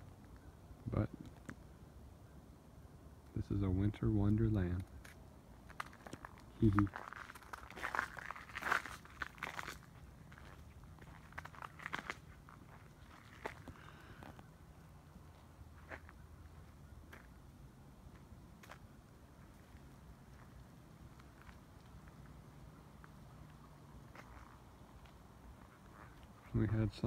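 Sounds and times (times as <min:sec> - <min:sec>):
footsteps crunching in snow: 0:05.7 - 0:14.3, 0:24.0 - 0:26.6.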